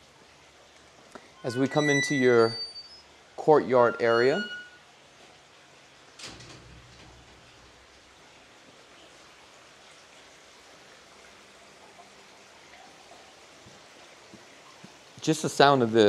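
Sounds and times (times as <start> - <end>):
water fountain trickling: 0.0 - 16.0.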